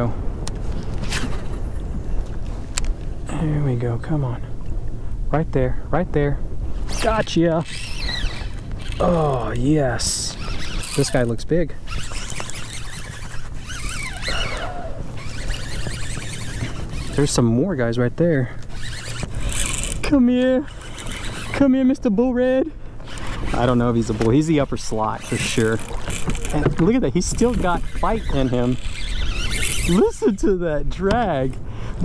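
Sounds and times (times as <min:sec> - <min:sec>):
wind rumble on microphone: 0:00.0 - 0:09.0
wind rumbling on microphone: 0:00.0 - 0:22.2, 0:22.9 - 0:32.0
wavering high-pitched sound: 0:12.1 - 0:17.2.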